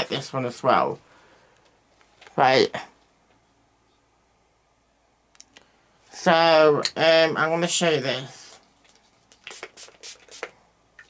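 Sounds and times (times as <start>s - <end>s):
perfume atomiser spraying: 8.8s - 10.6s.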